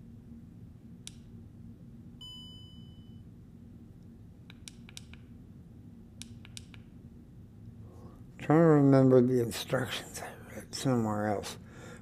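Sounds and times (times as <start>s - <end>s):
low steady hum: 0.0s - 12.0s
electronic beep: 2.2s - 3.2s.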